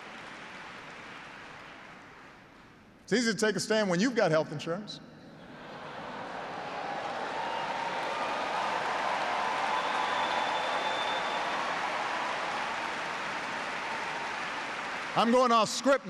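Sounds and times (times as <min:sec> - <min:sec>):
large audience applauding: 0:00.0 - 0:02.6, 0:05.6 - 0:16.0.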